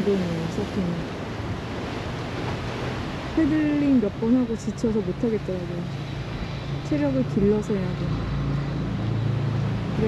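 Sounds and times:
vehicle engine humming: 0.0s - 10.0s
wind: 0.0s - 10.0s.

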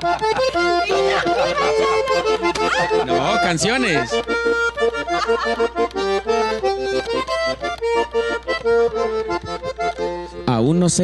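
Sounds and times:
button accordion playing: 0.0s - 11.0s.

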